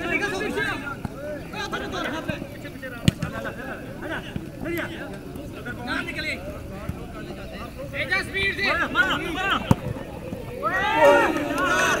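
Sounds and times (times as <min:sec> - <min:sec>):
football being kicked: 0:09.6 - 0:10.4
people calling out: 0:10.4 - 0:12.0.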